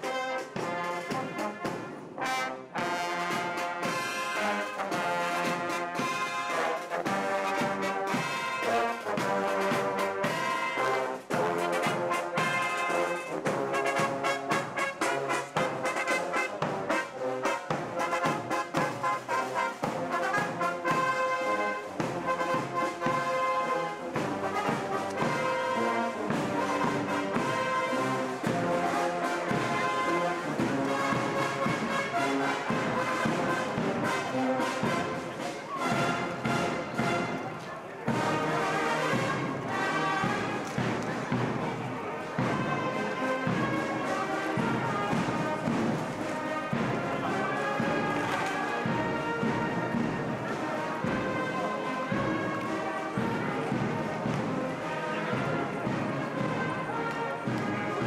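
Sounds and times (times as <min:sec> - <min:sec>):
brass band playing: 0:00.0 - 0:58.0.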